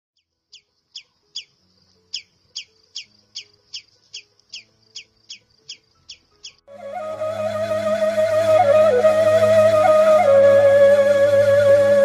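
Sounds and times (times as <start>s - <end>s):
bird chirping: 0.2s - 6.7s.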